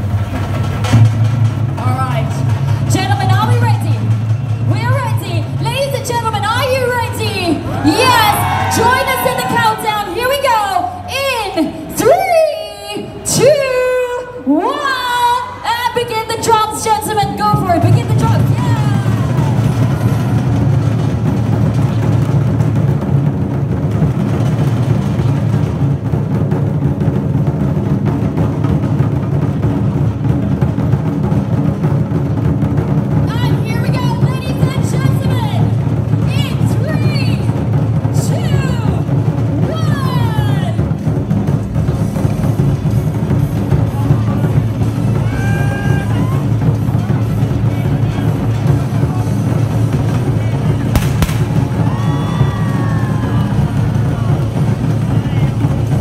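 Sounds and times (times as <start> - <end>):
barrel drums beaten with sticks: 0.0 - 10.6, 16.1 - 56.0
hand drums: 0.0 - 10.6, 17.0 - 56.0.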